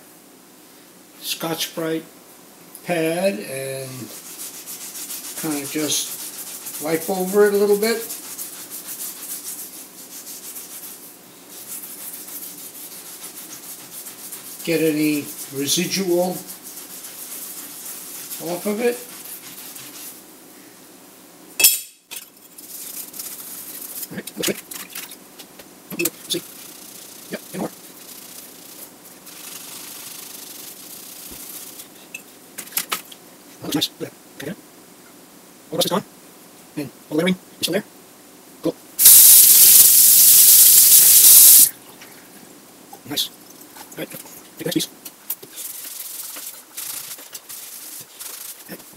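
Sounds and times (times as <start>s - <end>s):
scouring pad scrubbing metal: 4.1s - 20.2s
sharp metallic clink: 21.6s - 22.0s.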